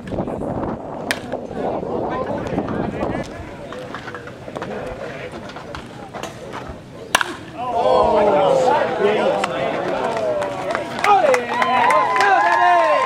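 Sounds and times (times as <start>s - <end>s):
spectators chattering: 0.0s - 13.0s
bat hitting baseball: 1.0s - 1.4s, 7.1s - 7.8s
crowd shouting: 7.5s - 13.0s.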